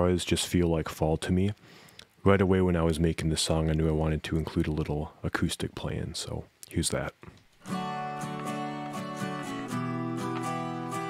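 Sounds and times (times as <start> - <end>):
layered acoustic guitar picking: 7.6 - 11.0.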